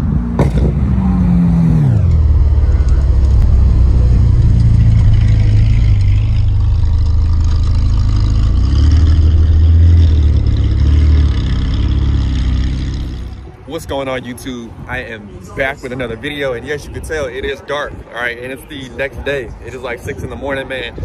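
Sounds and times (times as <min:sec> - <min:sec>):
car engine deep drone: 0:00.0 - 0:15.0.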